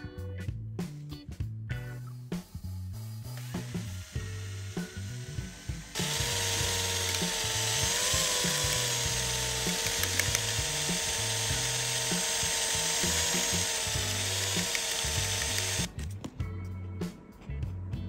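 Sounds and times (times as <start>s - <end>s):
cordless drill whine: 3.3s - 15.9s.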